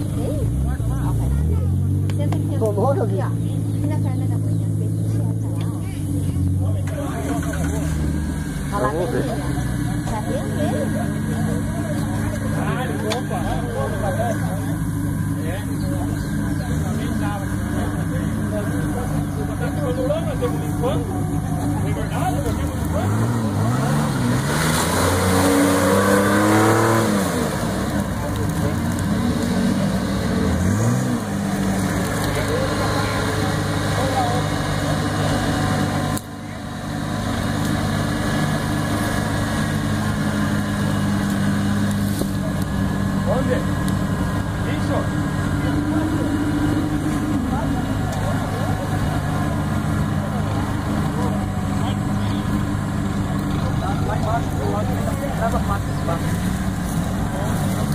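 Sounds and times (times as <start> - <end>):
car engine revving: 0.0 - 57.9.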